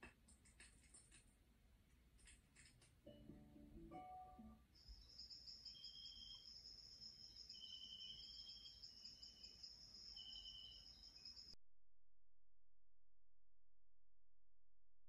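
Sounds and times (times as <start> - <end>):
cricket chirping: 4.8 - 11.6.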